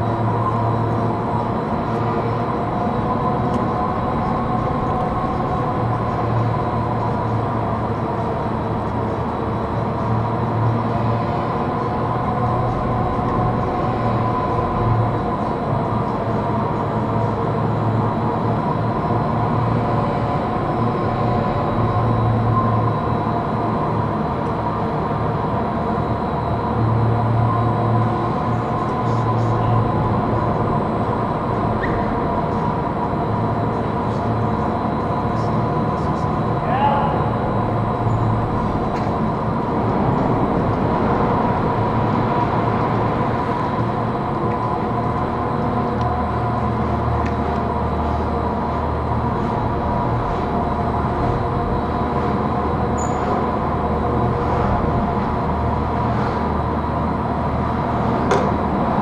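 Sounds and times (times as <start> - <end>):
low drone: 0.0 - 59.0
machinery whir and hum: 0.0 - 59.0.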